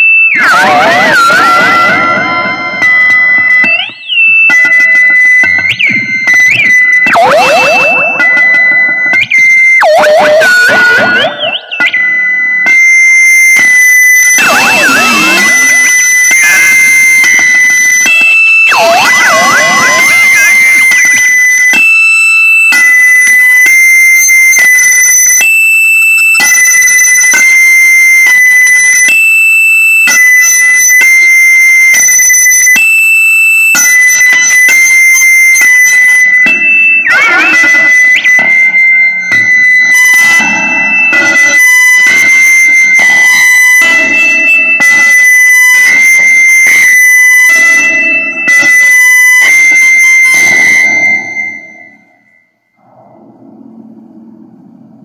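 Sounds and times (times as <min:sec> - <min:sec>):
looped electric guitar feedback: 0:00.0 - 0:29.2, 0:30.0 - 0:55.0
warbling pitch sweeps: 0:07.0 - 0:11.9, 0:52.8 - 0:55.0.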